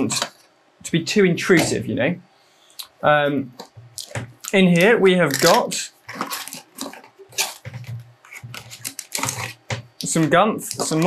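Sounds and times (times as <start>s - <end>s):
cardboard packaging rustling: 3.6s - 11.0s.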